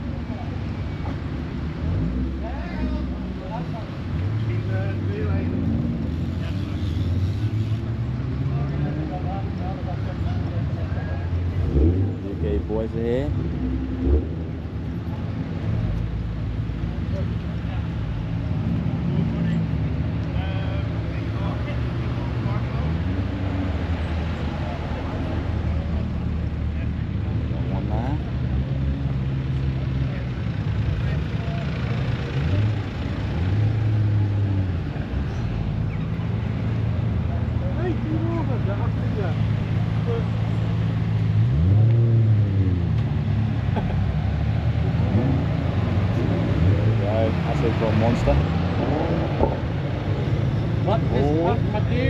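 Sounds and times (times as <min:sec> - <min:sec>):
car engine revving: 0:11.4 - 0:16.0, 0:21.7 - 0:52.0.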